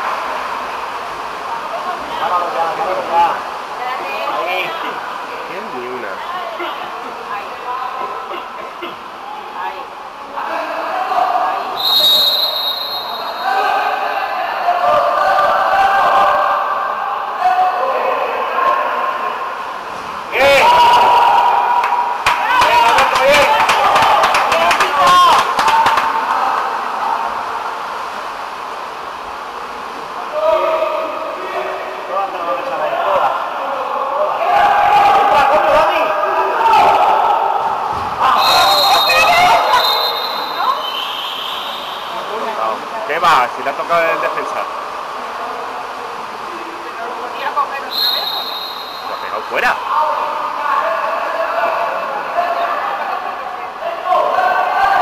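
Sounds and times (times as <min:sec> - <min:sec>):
spectators shouting and talking: 0:00.0 - 0:28.0, 0:30.2 - 0:45.7, 0:47.2 - 0:55.0
short high whistle blast: 0:11.8 - 0:13.5, 0:38.4 - 0:42.2, 0:47.9 - 0:49.4
sharp claps and slaps: 0:21.8 - 0:26.7.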